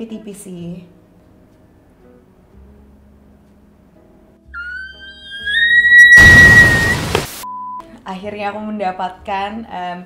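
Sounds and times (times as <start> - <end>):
rising comic whistle: 4.6 - 7.7
loud bang: 6.2 - 7.3.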